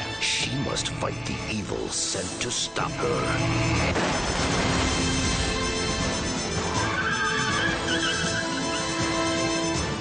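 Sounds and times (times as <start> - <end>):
dramatic trailer music: 0.0 - 10.0
car tyres screeching: 5.7 - 9.4.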